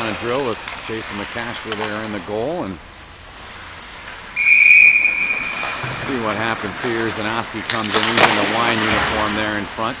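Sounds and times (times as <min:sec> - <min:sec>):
coach's whistle blast: 0:04.4 - 0:05.8.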